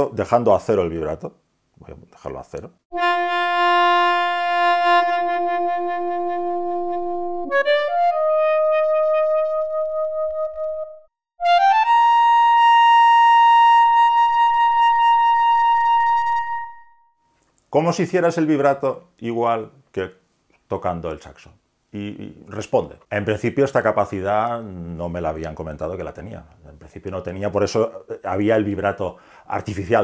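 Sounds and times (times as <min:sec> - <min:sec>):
synthesised saxophone notes: 0:02.9 - 0:17.1.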